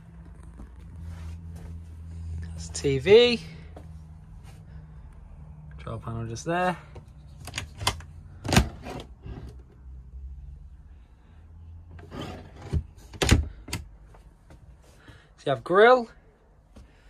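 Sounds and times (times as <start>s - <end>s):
rubbing and handling noise: 0.0s - 3.0s.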